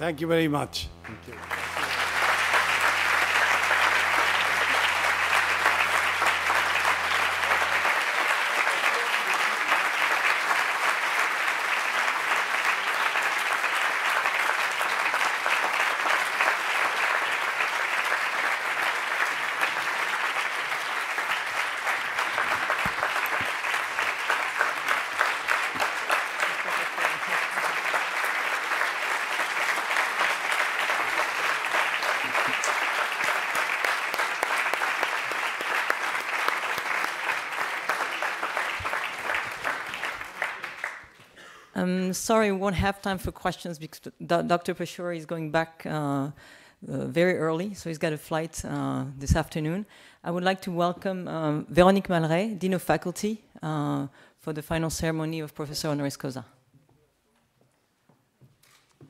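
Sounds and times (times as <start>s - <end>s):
audience applauding: 1.0s - 41.4s.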